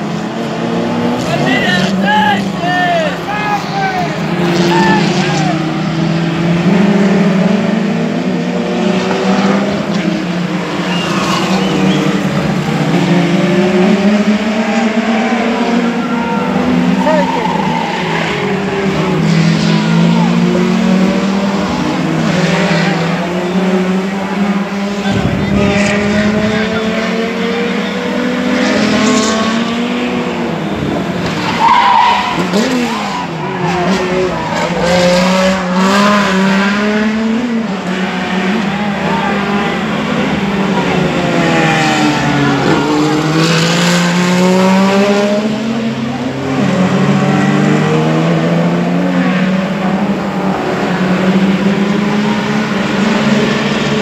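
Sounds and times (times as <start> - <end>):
racing car engines: 0.0 - 54.0.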